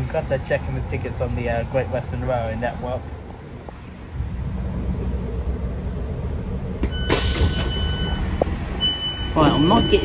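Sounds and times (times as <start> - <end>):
train interior rumble: 0.0 - 10.0
electronic door tone: 6.9 - 10.0.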